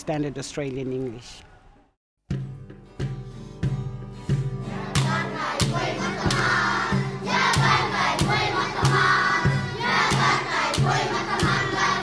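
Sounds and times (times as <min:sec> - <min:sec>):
children singing in chorus: 0:04.7 - 0:12.0
sticks struck in rhythm: 0:04.9 - 0:12.0.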